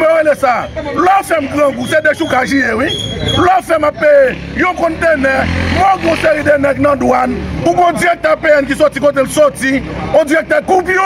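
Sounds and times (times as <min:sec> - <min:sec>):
man speaking loudly: 0:00.0 - 0:11.0.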